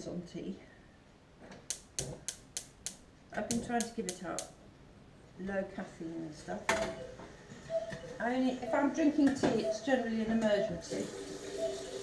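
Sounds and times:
sharp clicks: 0:01.6 - 0:04.6.

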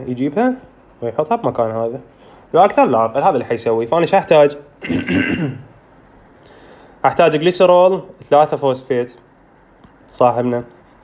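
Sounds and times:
faint steady hiss: 0:00.0 - 0:11.0
man clearing his throat: 0:04.8 - 0:05.7.

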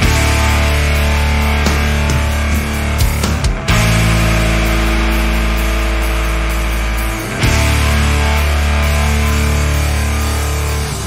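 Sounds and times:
held guitar chord ringing: 0:00.0 - 0:11.0.

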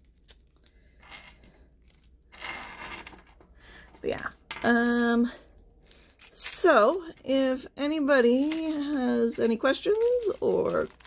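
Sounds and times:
small parts clicking: 0:04.6 - 0:07.0
plastic packet rustling: 0:08.3 - 0:11.0.

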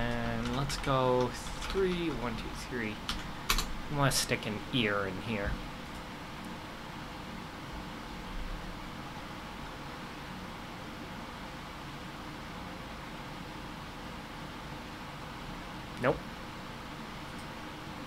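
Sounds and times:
microphone hiss: 0:00.0 - 0:18.0.

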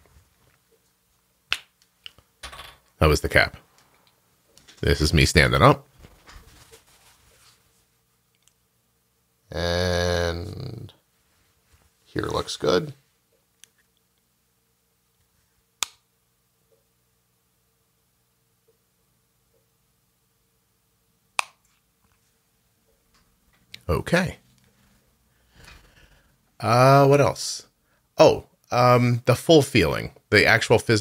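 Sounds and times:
soft rustle: 0:05.9 - 0:08.0, 0:11.1 - 0:12.3.

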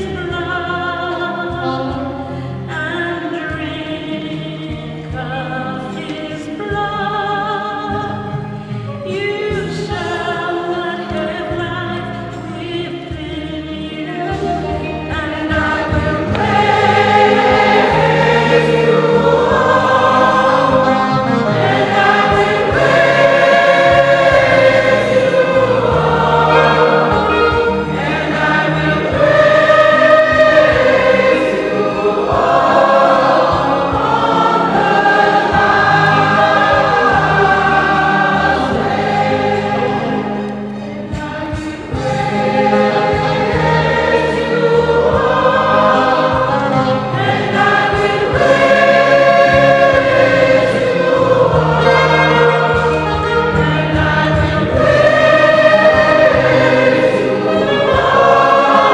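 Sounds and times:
choir singing a hymn: 0:00.0 - 0:58.9
low instrumental bass line: 0:14.4 - 0:58.9.

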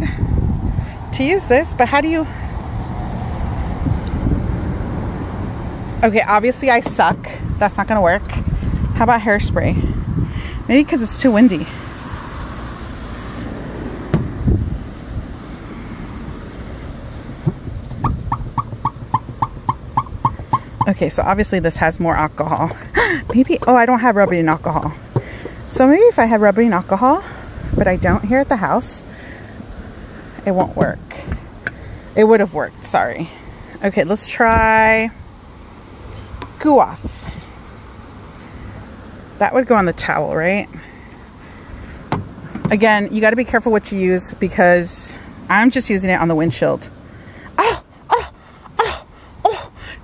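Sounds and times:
wind rumbling on microphone: 0:00.0 - 0:29.1, 0:36.2 - 0:38.0
aerosol hairspray hissing: 0:11.2 - 0:13.5.

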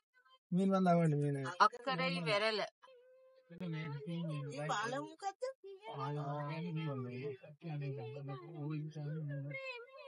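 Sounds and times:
low singing voice: 0:05.9 - 0:10.0.

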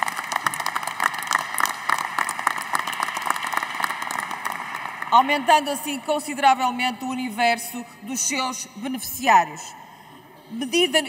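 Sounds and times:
many hands clapping: 0:00.0 - 0:05.4.

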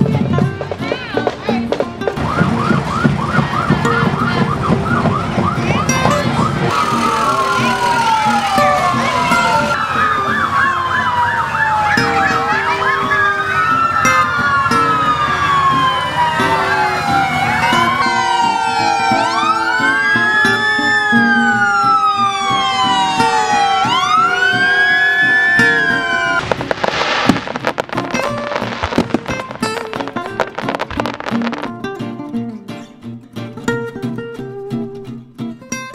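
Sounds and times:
guitar music: 0:00.0 - 0:35.9
fire truck sirens wailing: 0:00.9 - 0:31.9
burst of noise: 0:25.9 - 0:31.9.

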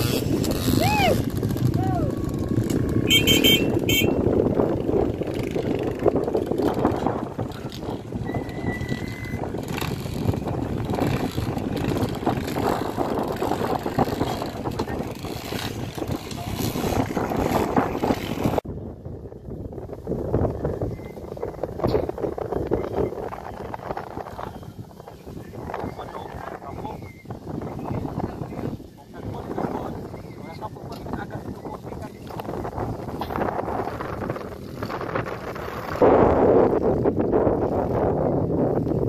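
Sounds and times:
distant dirt bike engines: 0:00.0 - 0:18.7, 0:20.2 - 0:39.0.

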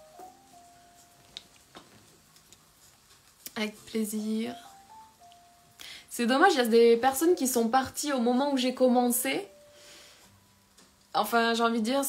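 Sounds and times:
quiet jazz music: 0:00.0 - 0:12.0.

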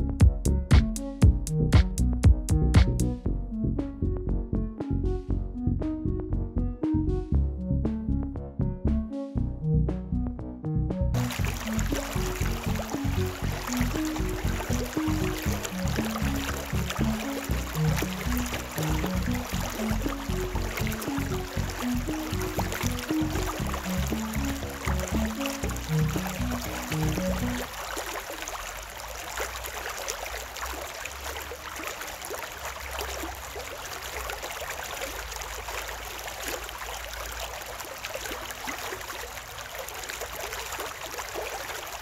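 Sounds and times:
low background music: 0:00.0 - 0:27.7
stream running over stones: 0:11.2 - 0:42.0.

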